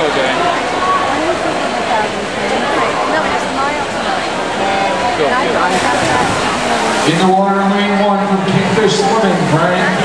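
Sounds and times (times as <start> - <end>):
spectators chattering: 0.0 - 10.0
swimmers splashing into water: 4.4 - 10.0.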